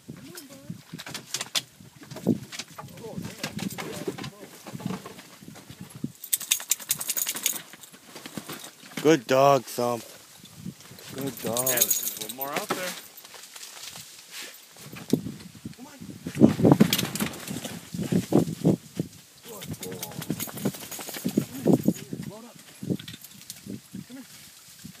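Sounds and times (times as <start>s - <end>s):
sharp rustles or knocks: 0.9s - 9.2s, 10.9s - 15.5s, 16.3s - 23.7s.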